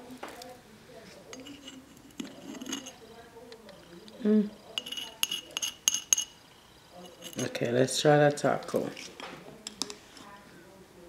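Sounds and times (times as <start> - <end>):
metal spatula clinking: 1.3 - 7.8.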